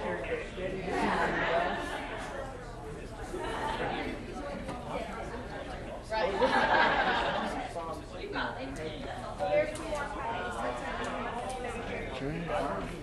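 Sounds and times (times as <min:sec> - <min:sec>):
people chatting in echoing room: 0:00.0 - 0:13.0.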